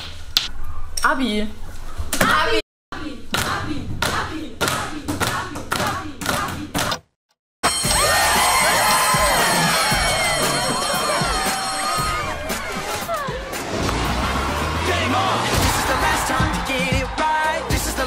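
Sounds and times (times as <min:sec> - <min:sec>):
electric school bell ringing: 0:07.6 - 0:13.1
young people cheering and shouting: 0:07.7 - 0:18.0.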